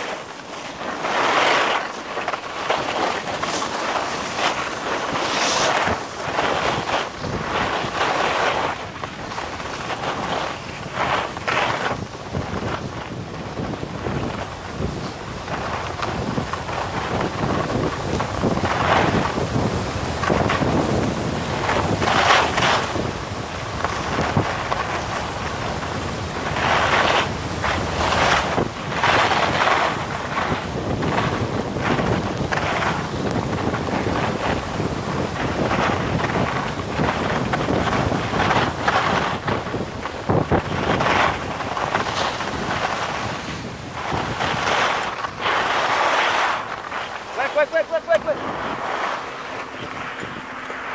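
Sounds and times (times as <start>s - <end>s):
skis scraping over snow: 0.0s - 50.9s
wind buffeting microphone: 0.0s - 50.9s.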